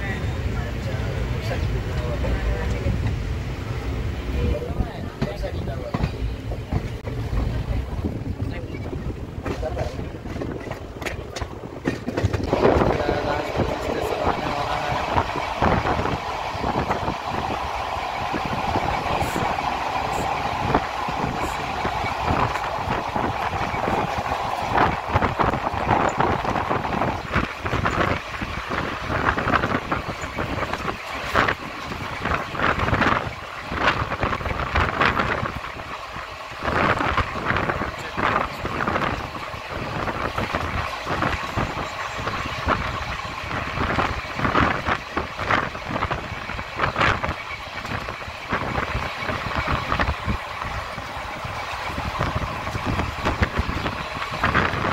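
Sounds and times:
train running noise: 0:00.0 - 0:54.9
wheels clattering on rails: 0:00.0 - 0:54.9.

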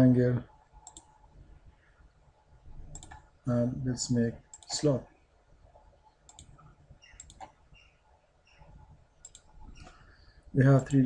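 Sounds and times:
computer mouse clicks: 0:00.8 - 0:01.2, 0:02.9 - 0:03.3, 0:04.5 - 0:04.8, 0:06.3 - 0:07.6, 0:09.2 - 0:10.0.

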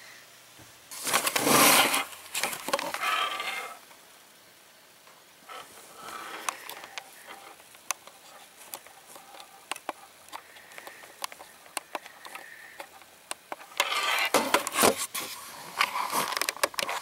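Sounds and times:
rustling: 0:00.9 - 0:03.8, 0:05.4 - 0:17.0
sharp clicks: 0:06.4 - 0:13.9.

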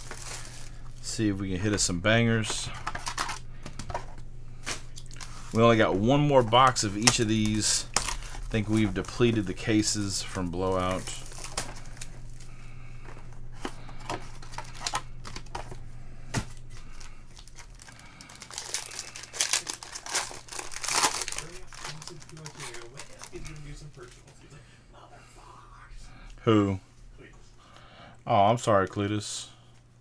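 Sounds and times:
foil pack crinkling: 0:00.0 - 0:24.3.

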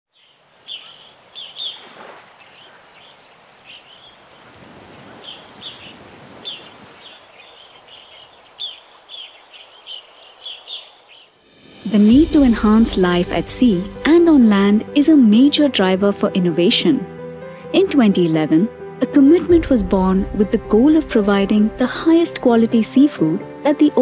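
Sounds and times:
birds chirping: 0:00.1 - 0:11.5
sea waves washing in: 0:00.2 - 0:10.8.

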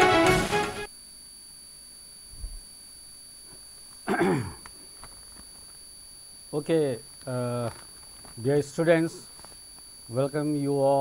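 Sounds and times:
man clearing his throat: 0:04.1 - 0:04.6.

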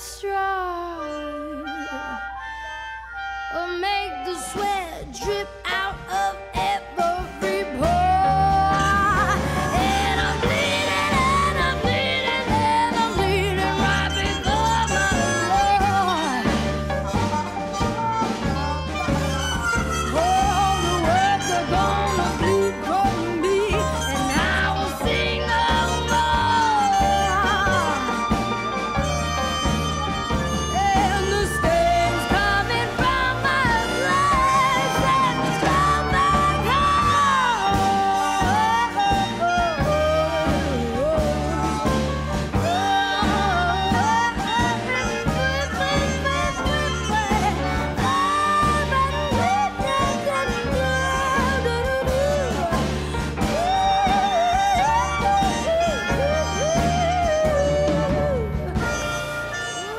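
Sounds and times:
woman singing with vibrato: 0:00.0 - 0:02.5, 0:03.5 - 0:59.9
jazz band playing: 0:00.0 - 0:59.9.

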